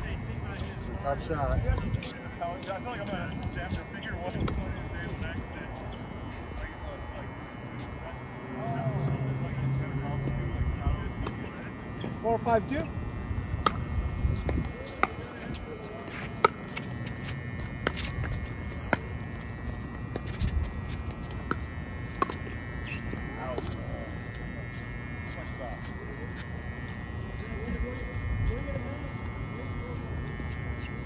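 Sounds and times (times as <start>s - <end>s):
paddles striking pickleball: 13.6s - 13.8s, 21.2s - 23.0s.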